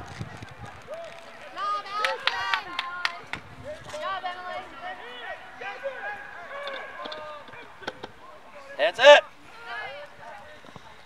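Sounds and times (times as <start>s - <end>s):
people shouting across a field: 0.6s - 10.4s.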